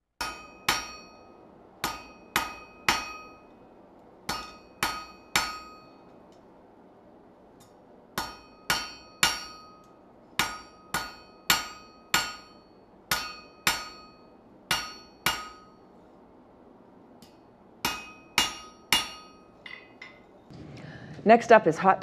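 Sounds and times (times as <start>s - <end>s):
sharp metal-on-metal strikes: 0.2s - 3.6s, 4.2s - 6.1s, 7.6s - 15.9s, 17.2s - 20.2s.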